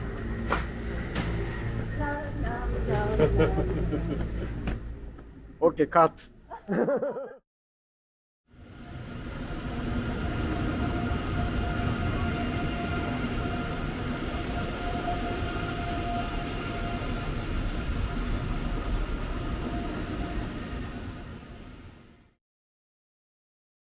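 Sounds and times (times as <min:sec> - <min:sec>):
train low rumble and hum: 0:00.0 - 0:06.4, 0:08.5 - 0:22.4.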